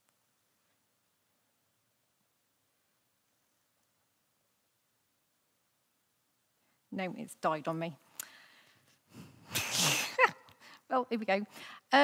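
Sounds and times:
hissy burst of breath: 8.2s - 10.8s.

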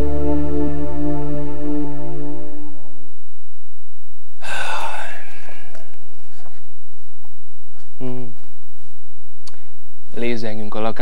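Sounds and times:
man's loud breathy exhalation: 4.4s - 5.9s.

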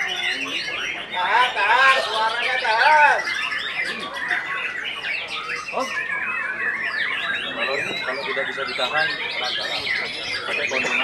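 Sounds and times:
songbirds whistling and chirping: 0.0s - 11.0s.

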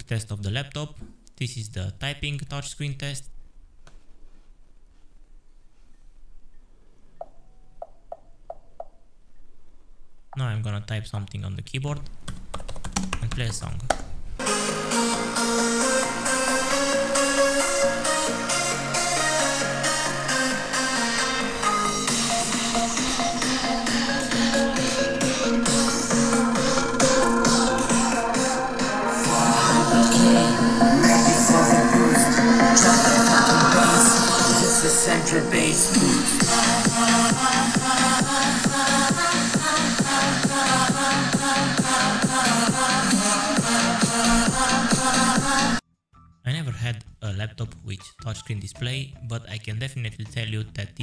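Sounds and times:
electronic music with steady beat: 14.4s - 45.8s.

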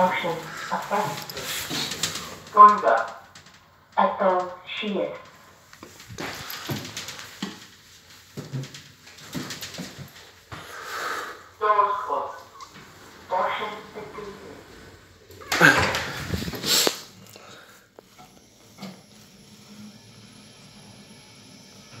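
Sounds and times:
indistinct voices: 0.0s - 5.4s, 10.6s - 17.0s
room noise: 0.0s - 22.0s.

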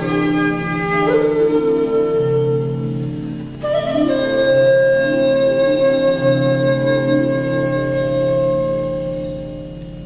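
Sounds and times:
bamboo flute melody: 0.0s - 10.0s
low sustained accompaniment: 0.0s - 10.0s.

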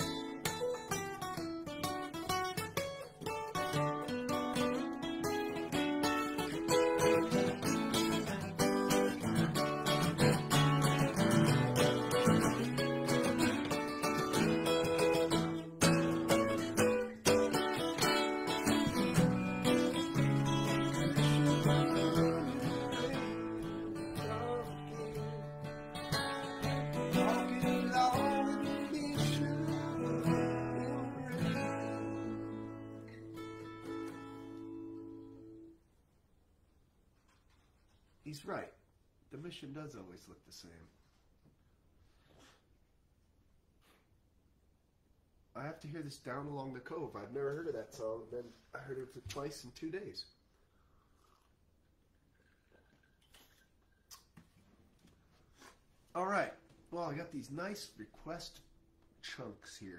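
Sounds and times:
acoustic guitar strummed and picked: 0.0s - 35.8s.

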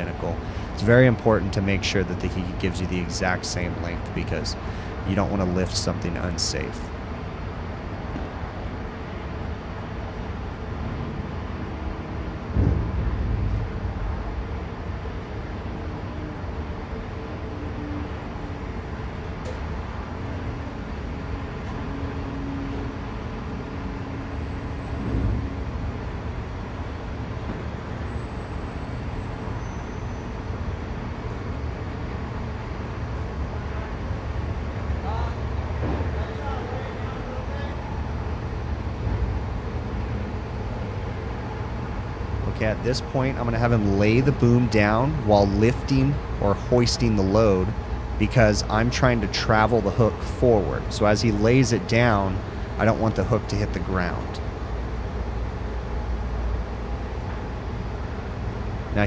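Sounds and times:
crane engine rumbling: 0.0s - 59.0s
loud thumps: 12.5s - 14.0s.

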